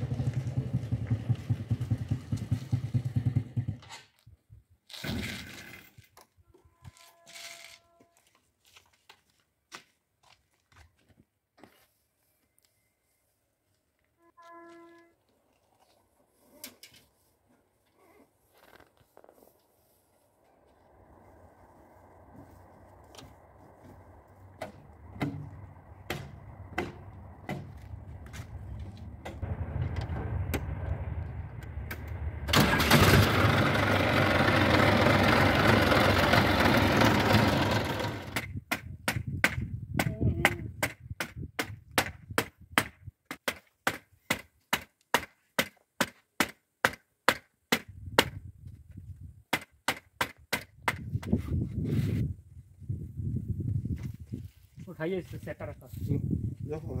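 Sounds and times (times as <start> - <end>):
tractor diesel engine running: 0.0 - 3.8, 22.2 - 38.5
sharp evenly spaced knocks: 24.6 - 27.9, 40.8 - 48.3, 49.5 - 51.0.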